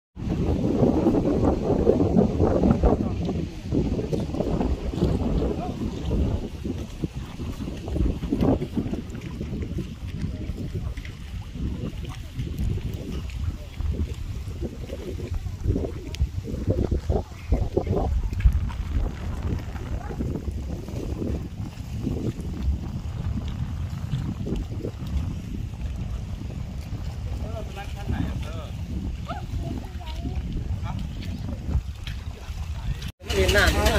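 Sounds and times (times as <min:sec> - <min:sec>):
wind buffeting microphone: 0:00.2 - 0:33.9
voices: 0:10.0 - 0:20.5, 0:27.2 - 0:33.9.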